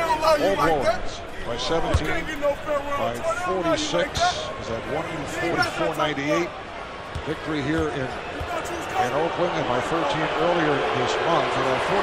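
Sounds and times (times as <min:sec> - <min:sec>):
men talking: 0:00.0 - 0:06.6, 0:07.2 - 0:12.0.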